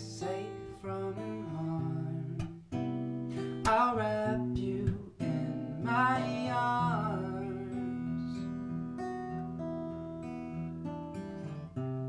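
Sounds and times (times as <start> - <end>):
man singing: 0.0 - 2.6, 3.3 - 8.6
acoustic guitar ballad: 0.0 - 12.0.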